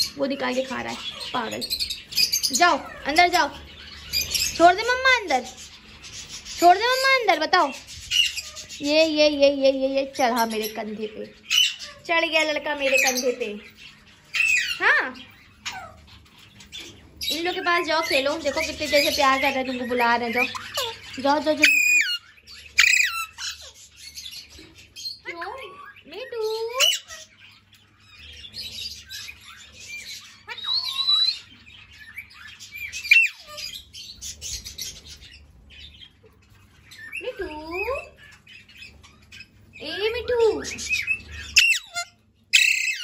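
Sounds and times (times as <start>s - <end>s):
parakeets squawking: 0.0s - 43.0s.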